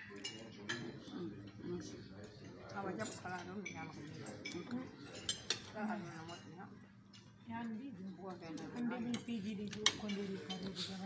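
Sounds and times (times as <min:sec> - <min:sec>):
cutlery clinking on plate: 0:03.0 - 0:06.5, 0:09.1 - 0:11.0.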